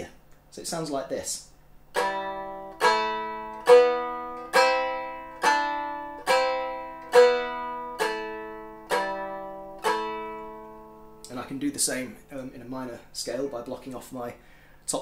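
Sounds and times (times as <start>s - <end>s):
lyre chords strummed: 1.9s - 14.3s.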